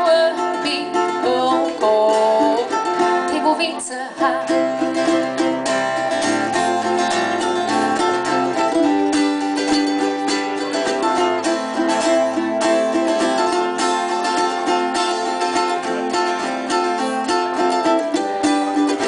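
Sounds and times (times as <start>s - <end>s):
acoustic guitar strumming: 0.0s - 19.0s
ukulele strumming: 0.0s - 19.0s.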